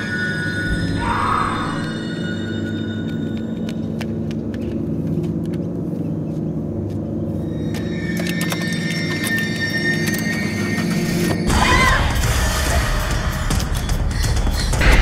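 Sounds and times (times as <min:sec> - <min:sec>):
droning film score: 0:00.0 - 0:15.0.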